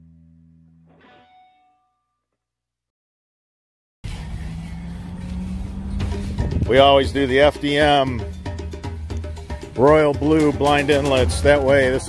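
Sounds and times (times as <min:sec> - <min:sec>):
rushing noise: 0:04.0 - 0:09.8.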